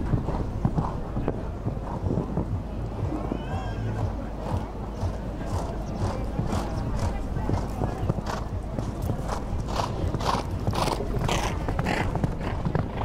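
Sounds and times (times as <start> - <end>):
hoofbeats on sand: 0.0 - 13.0.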